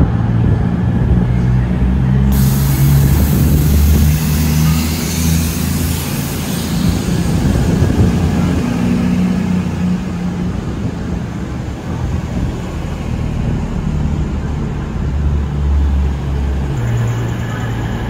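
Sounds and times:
diesel train engine droning: 0.0 - 18.0.

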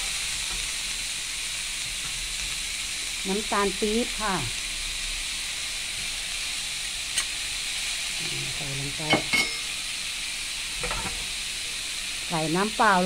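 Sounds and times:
pork sizzling in a pan: 0.0 - 13.0.

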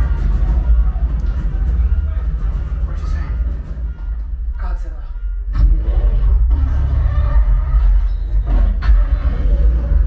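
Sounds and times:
action film music and effects: 0.0 - 10.0
heavy bass rumble: 0.0 - 10.0.

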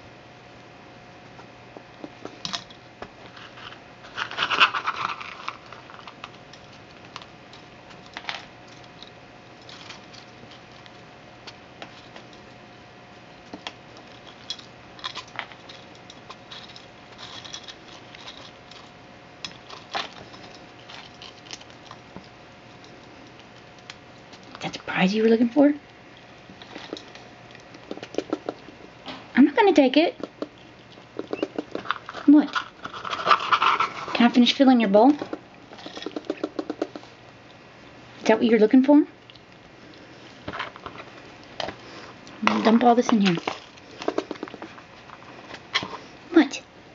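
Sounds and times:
squirrel rummaging in plastic bowl: 3.2 - 7.2, 31.2 - 37.1, 40.4 - 46.1
squirrel chattering: 27.8 - 28.7, 30.2 - 31.8, 35.2 - 37.1, 44.0 - 44.6.

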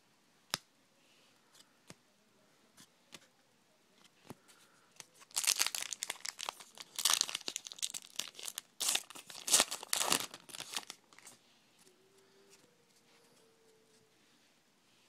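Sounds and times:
plastic wrapper crinkling: 5.1 - 11.4.

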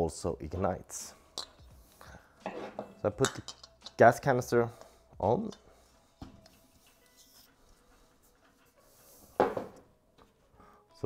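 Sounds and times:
gas canister handling: 2.4 - 4.0.

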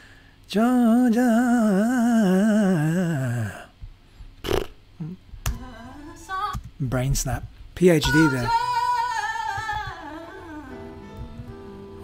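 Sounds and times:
man singing a vocal run: 0.5 - 3.7, 7.8 - 9.0.

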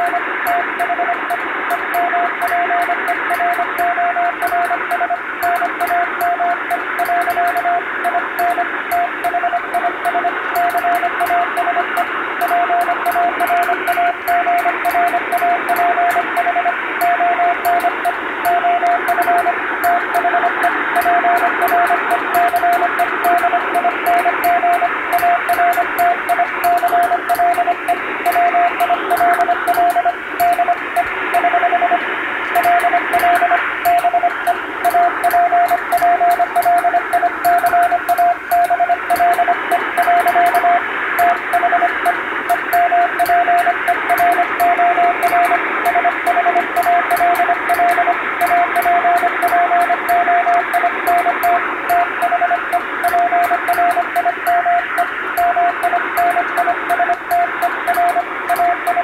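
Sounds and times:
morse code tone: 0.0 - 59.0
radio static and hiss: 0.0 - 59.0.

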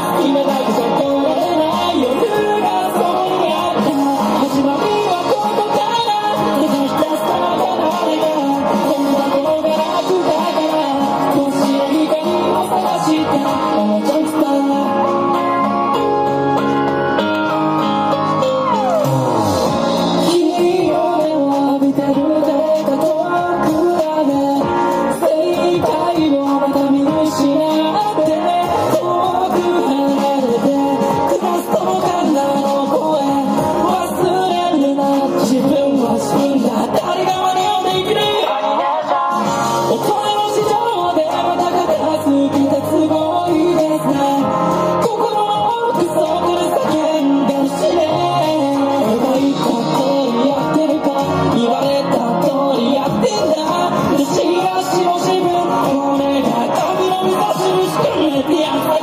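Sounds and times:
person singing rock song: 0.0 - 59.0.

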